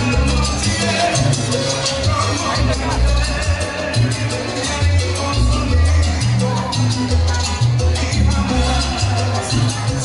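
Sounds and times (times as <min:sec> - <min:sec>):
salsa music: 0:00.0 - 0:10.0.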